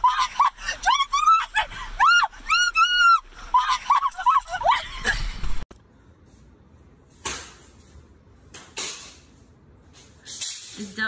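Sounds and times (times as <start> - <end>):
woman shrieking in fright: 0.0 - 5.2.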